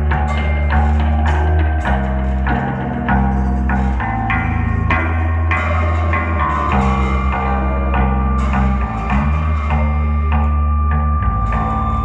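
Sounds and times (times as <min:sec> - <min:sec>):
held amplified string note: 0:00.0 - 0:12.0
sharp ringing struck hits: 0:00.0 - 0:12.0.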